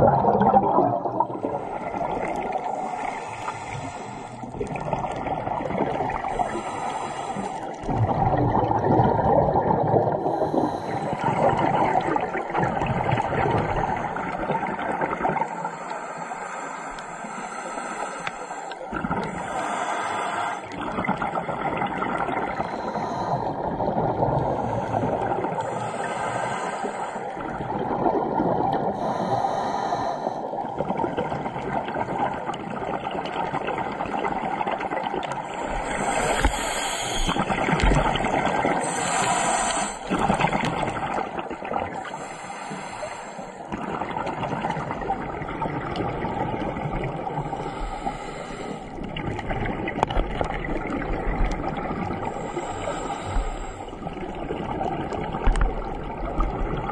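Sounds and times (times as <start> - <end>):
scuba exhaust bubbles gurgling: 0.0 - 56.9.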